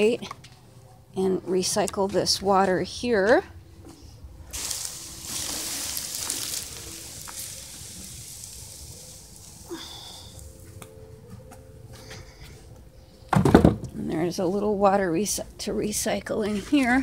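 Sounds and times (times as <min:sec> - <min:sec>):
water pouring and splashing: 0:04.5 - 0:10.5.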